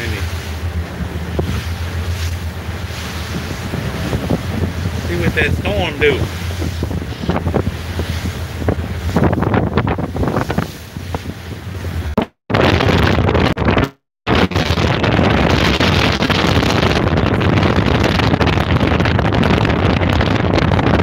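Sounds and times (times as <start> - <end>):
motorboat running at speed: 0.0 - 21.0
wind buffeting microphone: 0.0 - 21.0.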